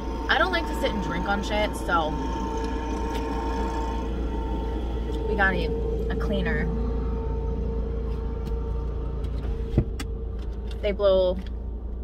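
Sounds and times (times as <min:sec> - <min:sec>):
sweeper engine and blower drone: 0:00.0 - 0:11.2.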